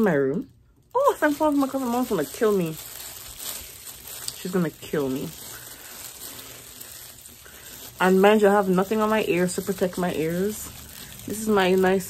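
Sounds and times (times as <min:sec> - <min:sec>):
gloved fingers rustling through hair: 0:00.0 - 0:12.0.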